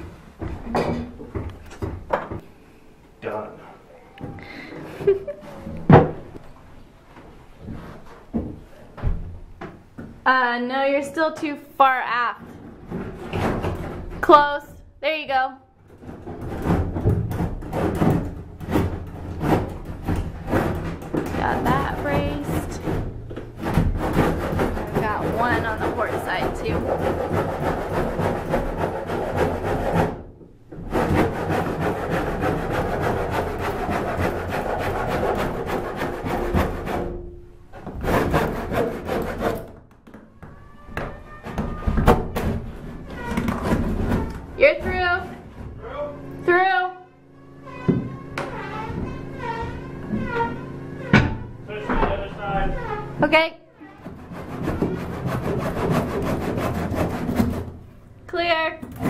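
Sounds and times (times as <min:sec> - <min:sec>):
wooden timbers scraping: 0:10.3 - 0:14.8, 0:15.8 - 0:59.0.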